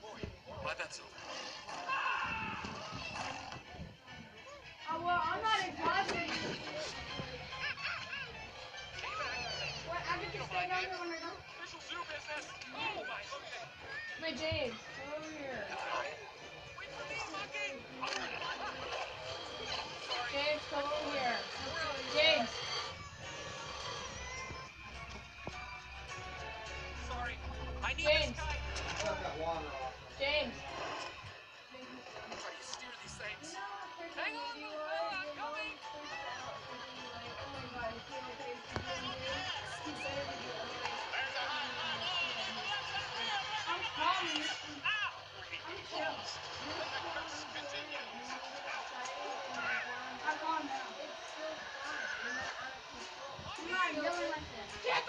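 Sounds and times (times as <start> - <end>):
film music from small speaker: 0.0 - 55.0.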